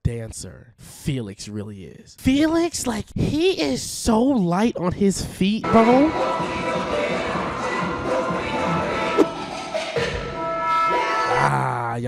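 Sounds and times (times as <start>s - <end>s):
dance pop track: 5.7s - 10.4s.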